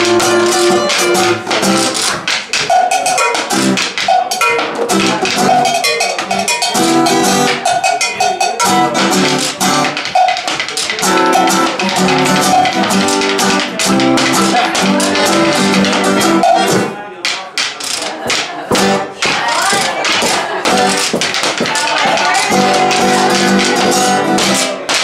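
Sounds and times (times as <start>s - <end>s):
acoustic guitar: 0.0s - 25.0s
stick strikes on wooden box drum: 0.0s - 25.0s
cowbell: 2.7s - 4.8s, 5.4s - 10.5s.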